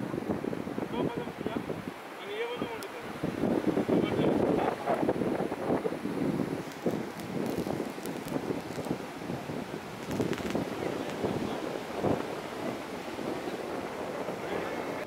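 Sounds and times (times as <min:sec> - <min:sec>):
surf breaking on beach: 0:00.0 - 0:15.0
wind buffeting microphone: 0:00.0 - 0:15.0.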